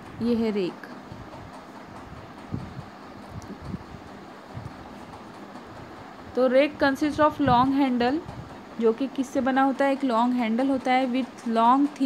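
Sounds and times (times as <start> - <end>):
faint hiss and rumble: 0.0 - 12.0.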